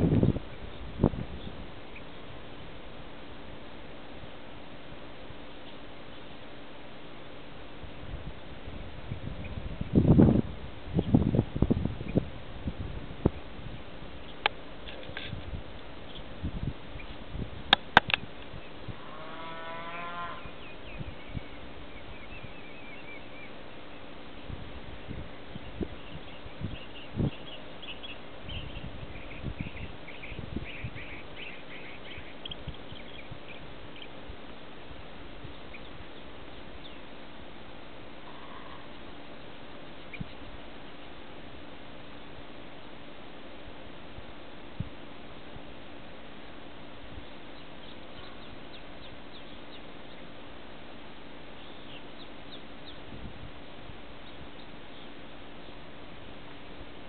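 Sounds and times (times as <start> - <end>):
steady outdoor hiss: 0.0 - 57.0
birds chirping: 14.2 - 15.1, 16.0 - 17.2, 18.4 - 34.6, 35.4 - 37.2, 38.2 - 41.3, 47.2 - 50.4, 51.5 - 55.9.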